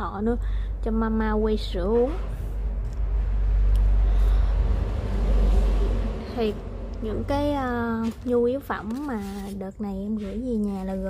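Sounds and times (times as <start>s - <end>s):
loud low rumble: 0.0s - 8.9s.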